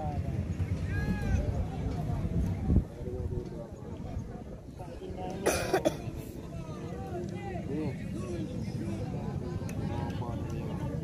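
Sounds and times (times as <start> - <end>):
faint background voices: 0.0 - 11.0
person coughing: 5.4 - 6.0.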